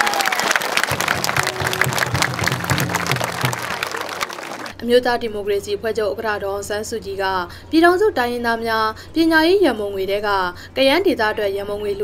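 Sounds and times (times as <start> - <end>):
crowd clapping: 0.0 - 4.8
music playing: 0.9 - 4.2.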